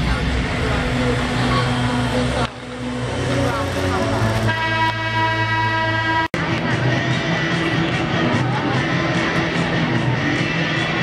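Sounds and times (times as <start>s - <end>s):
arena crowd chatter: 0.0s - 11.0s.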